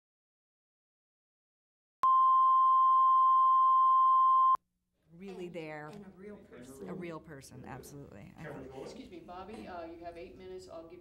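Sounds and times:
electronic test tone: 0:02.0 - 0:04.6.

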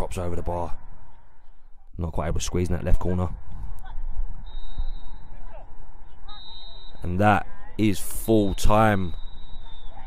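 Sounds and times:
referee's whistle: 0:04.4 - 0:05.6, 0:06.3 - 0:07.2, 0:08.4 - 0:10.0.

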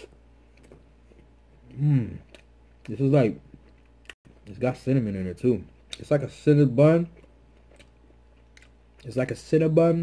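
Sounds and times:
faint chewing of pastry: 0:00.0 - 0:04.6, 0:06.8 - 0:09.4.

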